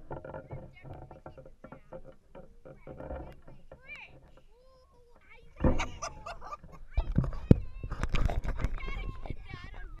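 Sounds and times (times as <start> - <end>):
people talking: 2.7 - 10.0.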